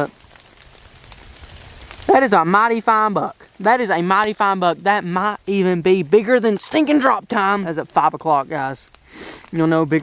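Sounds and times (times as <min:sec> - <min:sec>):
rain patter: 0:00.0 - 0:10.0.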